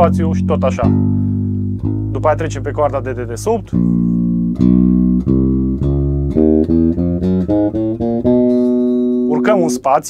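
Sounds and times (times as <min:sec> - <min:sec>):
slap electric bass notes: 0:00.0 - 0:10.0.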